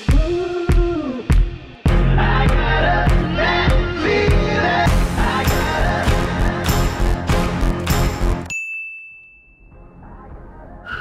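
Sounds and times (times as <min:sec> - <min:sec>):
music: 0:00.0 - 0:08.5, 0:09.6 - 0:11.0.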